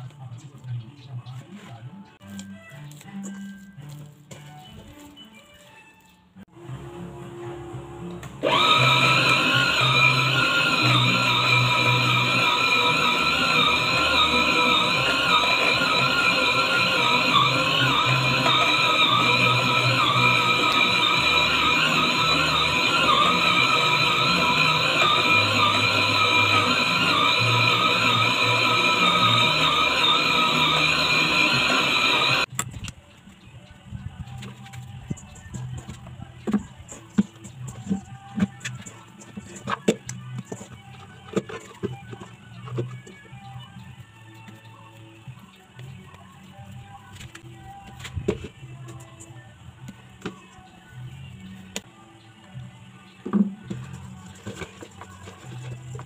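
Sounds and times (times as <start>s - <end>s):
stand mixer motor whining: 6.6s - 32.5s.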